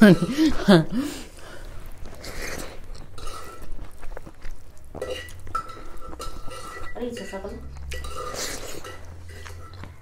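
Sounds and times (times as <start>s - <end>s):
metal plate clinking: 0.0s - 0.8s, 4.9s - 10.0s
chewing and mouth sounds: 1.3s - 7.0s, 7.6s - 10.0s.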